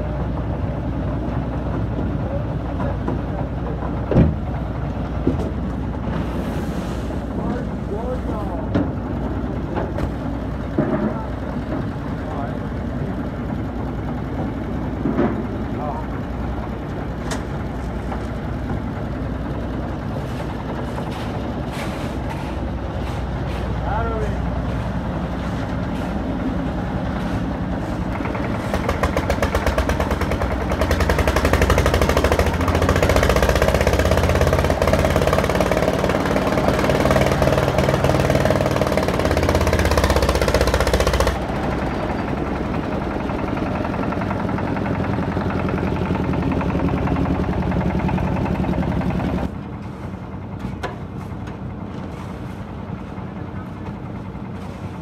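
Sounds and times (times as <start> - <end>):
concrete mixer running: 7.3 - 55.0.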